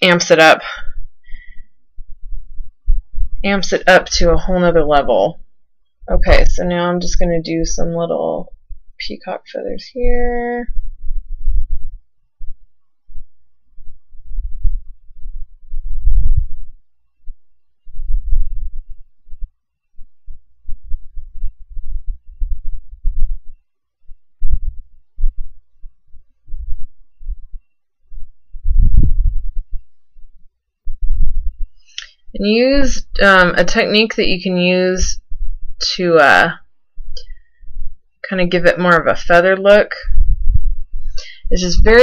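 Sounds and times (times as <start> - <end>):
microphone handling thumps: 10.0 - 31.9, 40.1 - 41.2.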